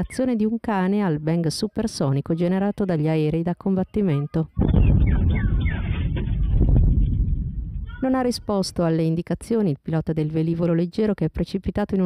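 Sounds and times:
sonic boom low rumble: 0:04.6 - 0:08.0.

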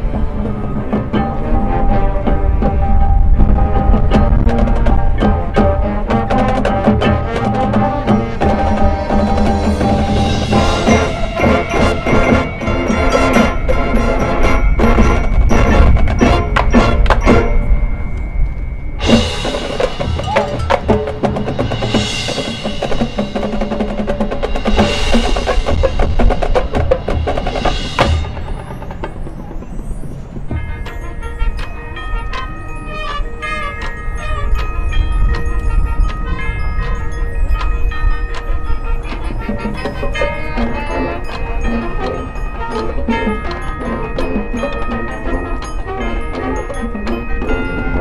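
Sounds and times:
marching band playing: 0:00.0 - 0:18.1, 0:18.8 - 0:48.0
mallet percussion: 0:00.0 - 0:48.0.

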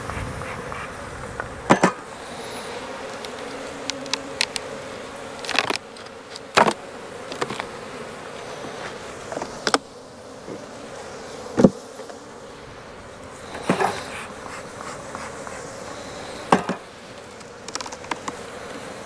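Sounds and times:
wooden hive boxes knocking: 0:00.0 - 0:02.1, 0:03.0 - 0:07.8, 0:08.5 - 0:10.8, 0:11.5 - 0:12.2, 0:13.5 - 0:15.8, 0:16.4 - 0:18.8
honeybees buzzing: 0:00.0 - 0:19.0.

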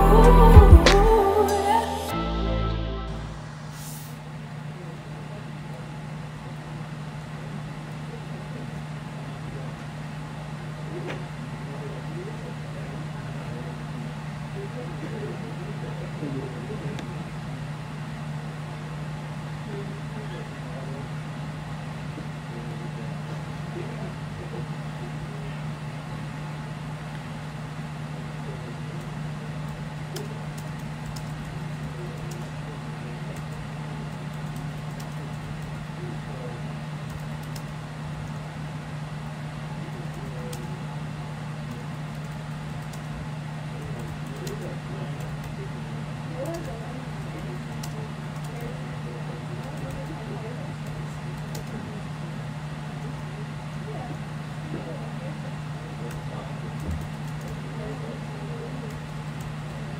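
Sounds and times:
steady low hum: 0:00.0 - 0:59.9
laptop keys typing: 0:30.2 - 0:32.5, 0:33.3 - 0:35.9, 0:37.1 - 0:38.4, 0:41.8 - 0:43.1, 0:43.8 - 0:45.6, 0:46.4 - 0:48.7, 0:49.6 - 0:50.2, 0:50.8 - 0:51.7, 0:56.8 - 0:57.6.

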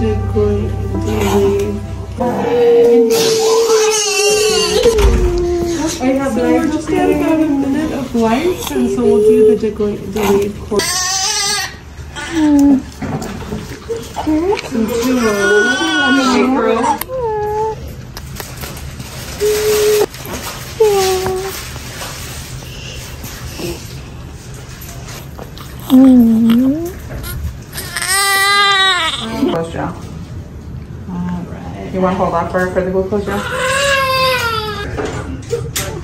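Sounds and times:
newborn baby crying: 0:03.1 - 0:06.0, 0:10.2 - 0:12.6, 0:14.9 - 0:17.7, 0:27.2 - 0:29.6, 0:33.3 - 0:34.9.

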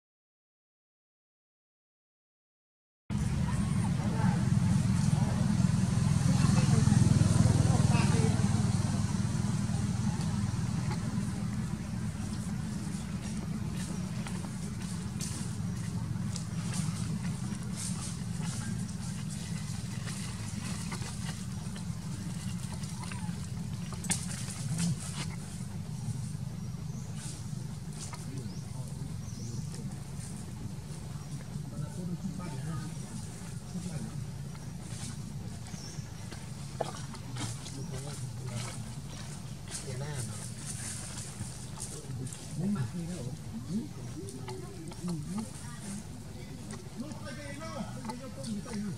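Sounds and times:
steady low rumble: 0:03.1 - 0:48.9
dry leaves crackling: 0:32.9 - 0:43.4.

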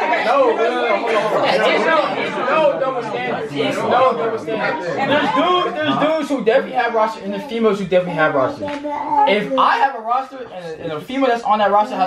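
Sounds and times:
crowd of overlapping voices: 0:00.0 - 0:12.0.

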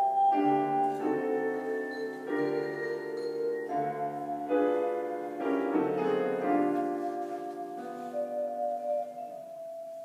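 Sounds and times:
piano-like keyboard chords: 0:00.0 - 0:10.0.

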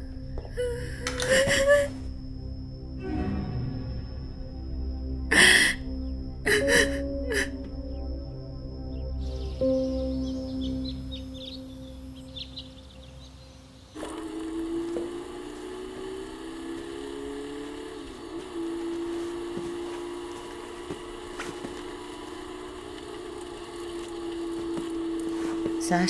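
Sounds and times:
droning hum rising in pitch: 0:00.0 - 0:26.0
soft sustained music: 0:00.0 - 0:26.0
high bird-like chirps: 0:09.2 - 0:14.0.

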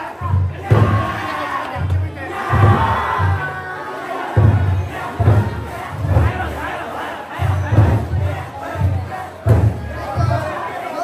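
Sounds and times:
crowd shouting and chanting: 0:00.0 - 0:11.0
big taiko drum beating: 0:00.2 - 0:10.7.

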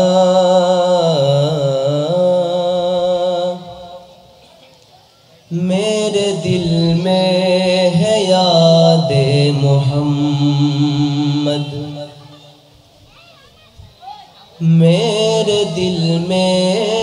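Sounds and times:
man singing unaccompanied: 0:00.0 - 0:04.4, 0:05.4 - 0:12.7, 0:14.5 - 0:17.0.

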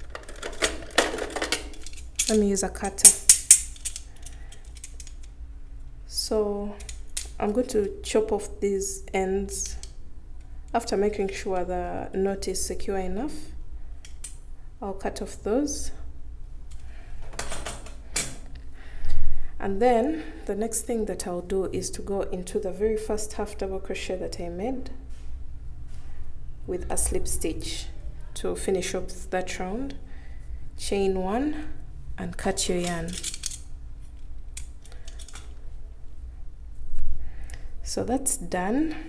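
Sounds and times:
small hard objects clattering: 0:00.0 - 0:05.2.

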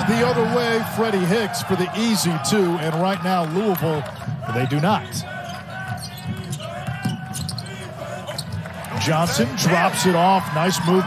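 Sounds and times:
murmur of arena crowd: 0:00.0 - 0:11.0.

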